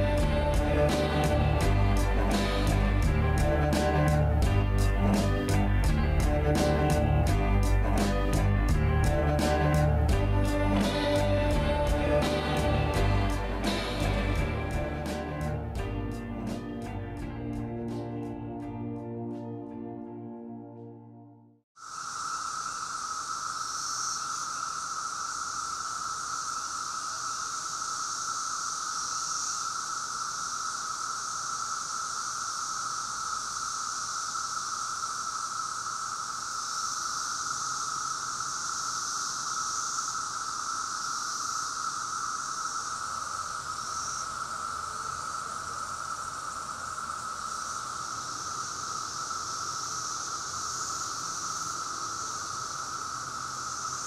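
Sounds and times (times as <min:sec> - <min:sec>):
cicadas droning: 0:00.0 - 0:19.5, 0:21.8 - 0:54.0.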